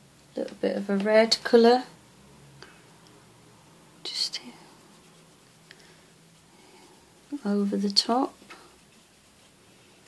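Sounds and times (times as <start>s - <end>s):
woman whispering breathily: 4.1s - 4.8s.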